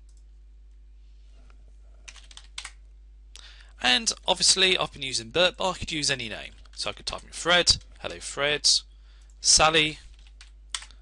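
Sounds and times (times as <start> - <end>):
faint steady hum: 0.0 - 11.0
computer keyboard typing: 2.1 - 2.8, 10.1 - 11.0.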